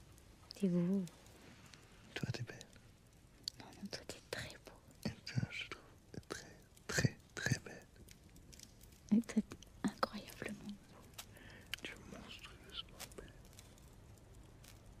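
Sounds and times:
person whispering: 2.1 - 2.8, 3.5 - 8.0, 9.1 - 13.6.

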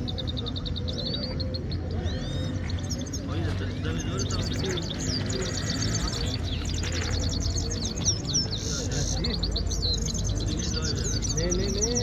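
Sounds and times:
goldfinch singing: 0.0 - 12.0.

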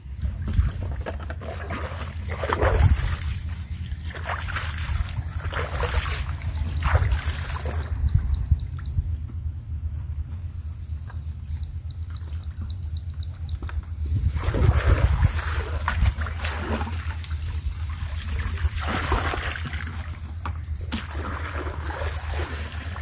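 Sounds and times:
steady low rumble: 0.0 - 23.0
river water sloshing and splashing: 0.2 - 8.3, 14.3 - 23.0
water poured from bucket: 0.5 - 7.8, 14.3 - 23.0
bird chirping: 6.3 - 14.0.

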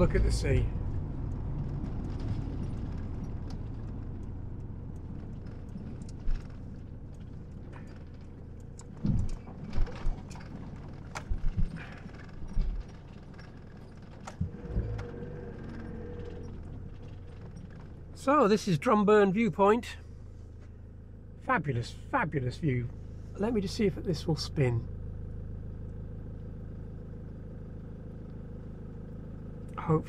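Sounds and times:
dull suspension bumps: 0.0 - 18.6
tyres rolling over gravel: 0.0 - 18.9
van engine and road noise: 0.0 - 30.0.

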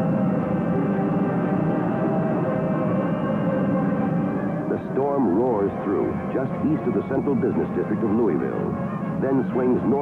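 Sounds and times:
ominous sustained drone: 0.0 - 10.0.

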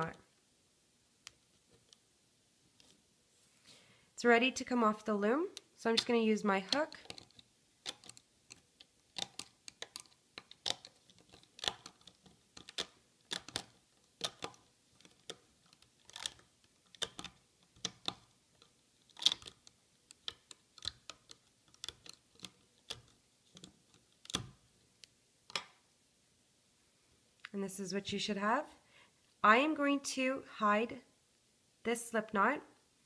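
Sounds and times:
rubber bands clicking and snapping: 5.5 - 25.8.

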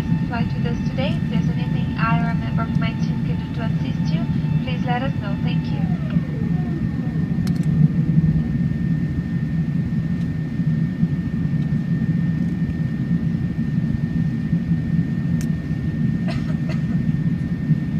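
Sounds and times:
airliner engine rumble: 0.0 - 17.9.

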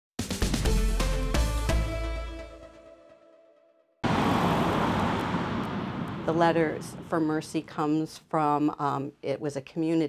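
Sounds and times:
road traffic rushing: 4.0 - 7.8.

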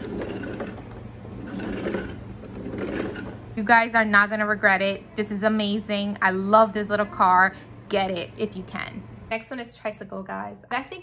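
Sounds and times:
plastic wheels rolling on wooden floor: 0.0 - 3.5.

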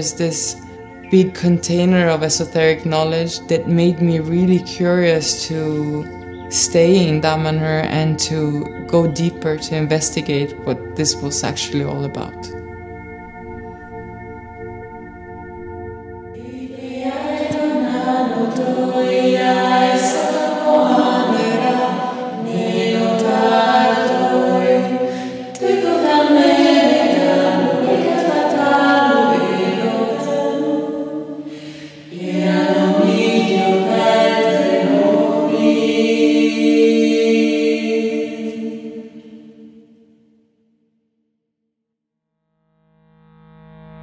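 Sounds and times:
choir singing held chords: 16.3 - 40.2.

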